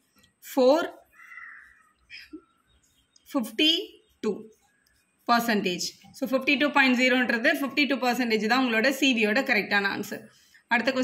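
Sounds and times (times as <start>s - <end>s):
crow cawing: 1.1s - 2.0s.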